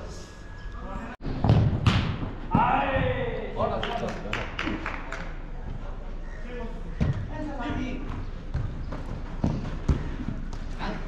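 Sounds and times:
football kick thumps: 0:01.4 - 0:03.2.

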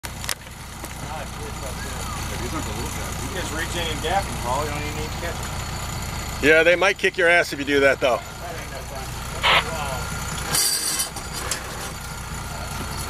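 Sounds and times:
boat engine droning: 0:00.2 - 0:13.0
faint voices talking: 0:00.9 - 0:10.3.

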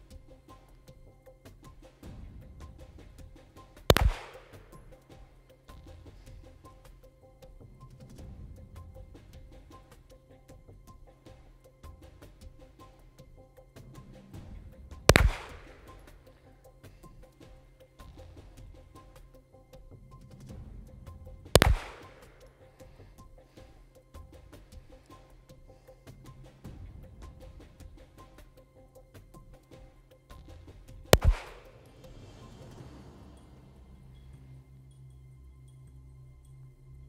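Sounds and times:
background music with ticking beat: 0:00.0 - 0:37.0
handgun shot: 0:03.9 - 0:04.7, 0:15.1 - 0:16.0, 0:21.6 - 0:22.4, 0:31.2 - 0:31.8.

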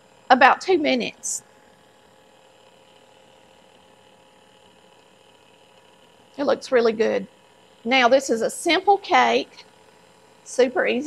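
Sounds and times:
stand mixer humming: 0:00.0 - 0:11.0.

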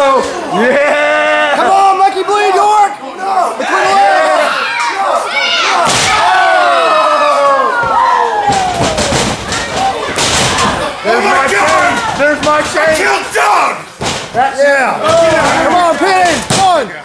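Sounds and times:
crowd yelling and shouting: 0:00.0 - 0:14.0.

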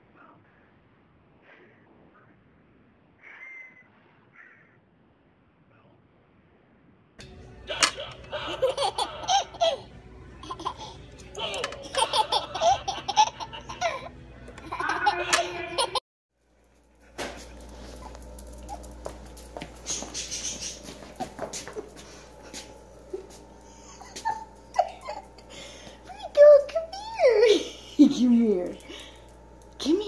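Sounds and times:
steady low hum: 0:07.2 - 0:30.0
baby laughing: 0:07.7 - 0:16.0, 0:23.8 - 0:25.4.

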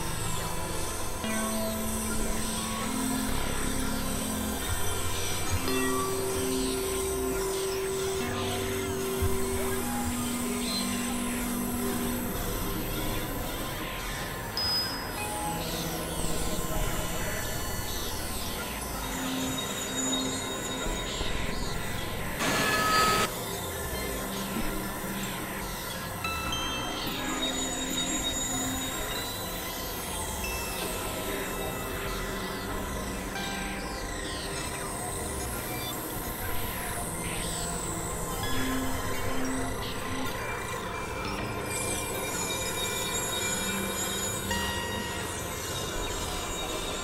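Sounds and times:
synthesizer drone with falling glides: 0:00.0 - 0:47.0
loud burst of noise: 0:22.4 - 0:23.3.

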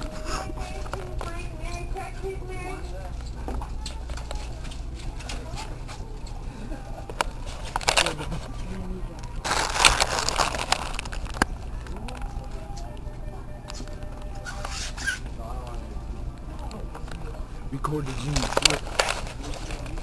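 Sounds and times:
indistinct voices: 0:00.0 - 0:20.0
steady low hum: 0:00.0 - 0:20.0.

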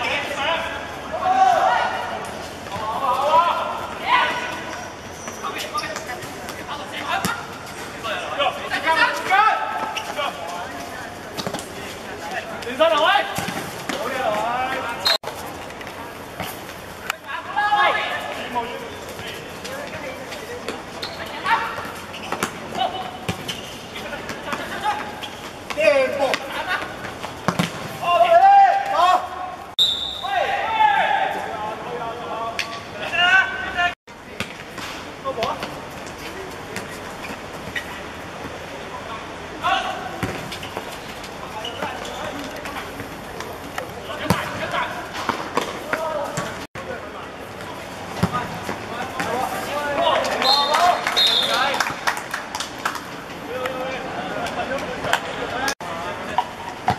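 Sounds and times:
players shouting: 0:00.0 - 0:10.8, 0:27.9 - 0:32.2
steady hum of stadium: 0:00.0 - 0:56.9
ball kicked thuds: 0:27.4 - 0:27.9.

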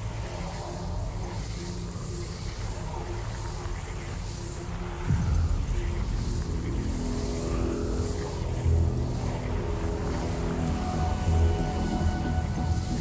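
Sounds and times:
low steady rumbling: 0:00.0 - 0:13.0
sustained music notes: 0:05.1 - 0:13.0.

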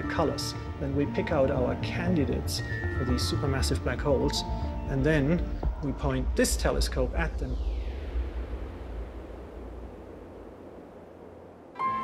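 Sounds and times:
low rumble: 0:04.8 - 0:11.8
soft rushing noise: 0:05.0 - 0:12.0.

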